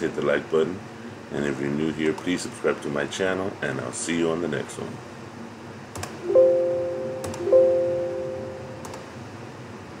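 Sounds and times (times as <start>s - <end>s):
electronic chime: 6.2s - 8.9s.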